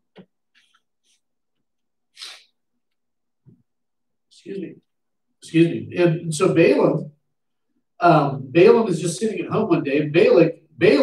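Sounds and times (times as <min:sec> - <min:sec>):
man sneezing: 0:02.2 - 0:02.5.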